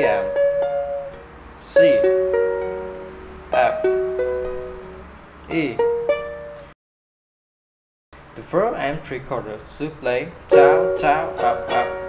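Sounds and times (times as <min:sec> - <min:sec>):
ukulele strum: 0:00.0 - 0:06.7, 0:10.5 - 0:12.0.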